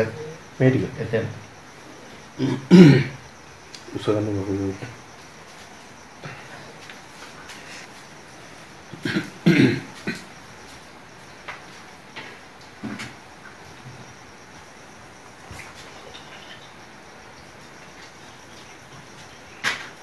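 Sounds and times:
low steady hiss: 0.0 - 20.0
throaty cough-like vocal sound: 2.4 - 3.2, 9.0 - 10.2.

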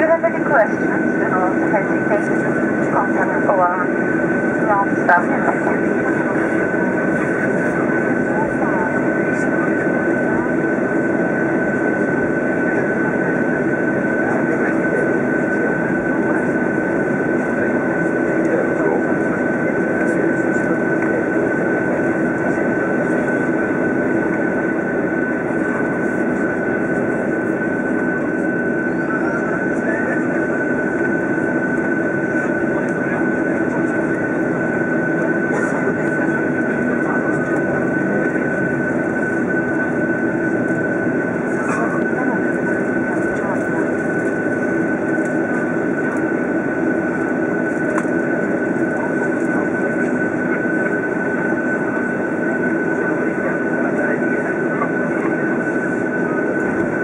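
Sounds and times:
jet engines rumbling with whine: 0.0 - 57.0.

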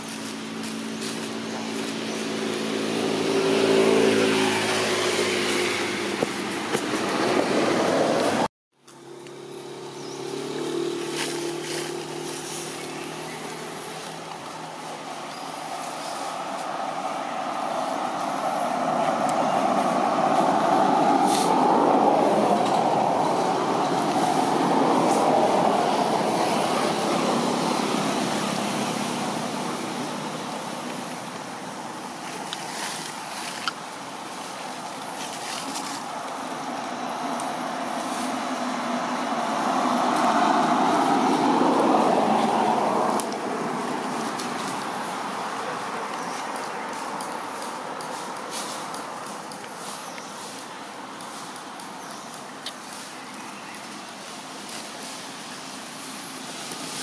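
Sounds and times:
vehicle passing by: 0.0 - 53.1
engine humming: 0.0 - 57.0.

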